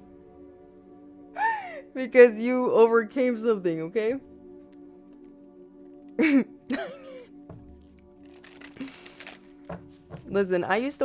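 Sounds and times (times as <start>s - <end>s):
soft background music: 0.0s - 11.0s
woman laughing: 6.2s - 7.3s.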